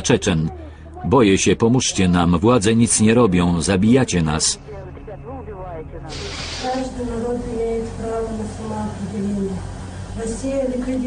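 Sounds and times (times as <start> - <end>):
low steady hum: 3.0 - 11.0
faint voices: 4.5 - 11.0
steady hiss: 6.1 - 7.2.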